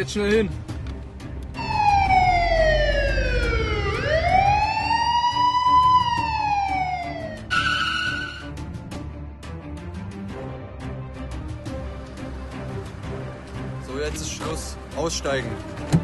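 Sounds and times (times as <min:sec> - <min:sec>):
police siren wailing: 0:01.6 - 0:08.5.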